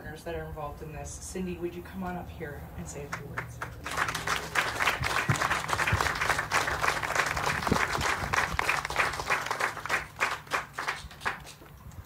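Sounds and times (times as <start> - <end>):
audience applauding: 3.4 - 11.6.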